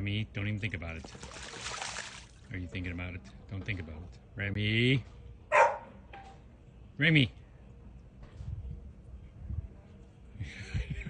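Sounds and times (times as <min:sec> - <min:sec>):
dog barking: 0:05.5 - 0:06.0.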